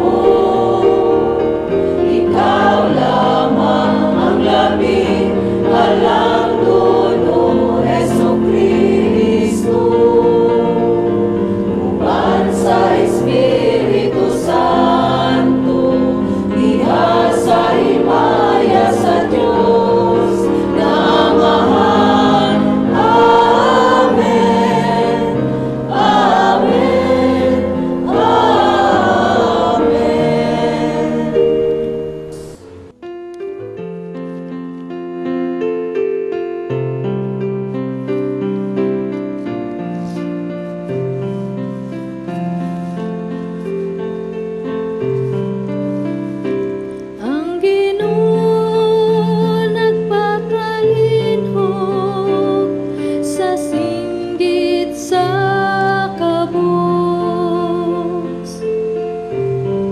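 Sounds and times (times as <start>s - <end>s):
choir singing a hymn: 0.0s - 32.9s, 41.4s - 59.9s.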